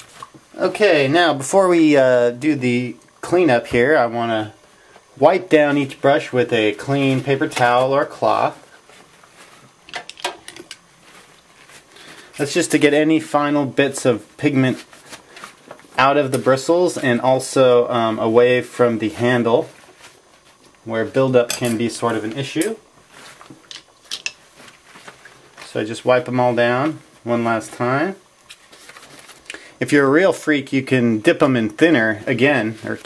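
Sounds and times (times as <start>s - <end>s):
paper towel rustling: 0.0s - 2.0s, 3.2s - 9.9s, 10.8s - 23.6s, 24.4s - 33.0s.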